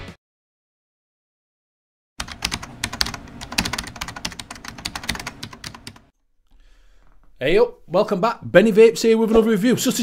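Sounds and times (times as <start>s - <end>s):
keyboard typing clicks: 2.2s - 6.0s.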